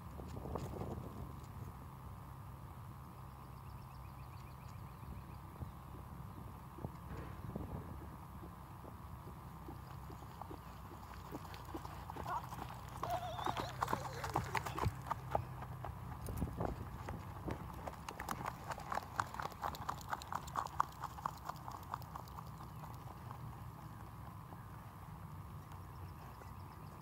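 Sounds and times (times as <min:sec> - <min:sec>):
horse hoofbeats on grass: 0:06.7 - 0:26.0.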